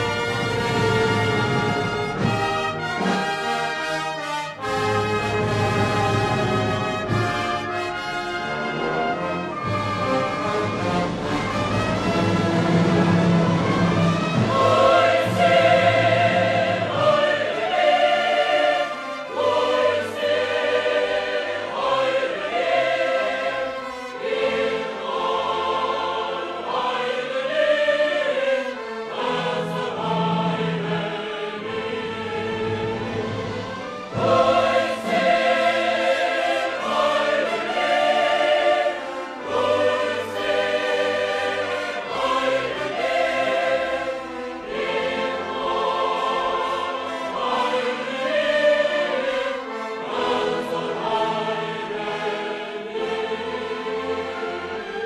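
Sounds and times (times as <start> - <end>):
choir singing with orchestra: 0.0 - 55.0.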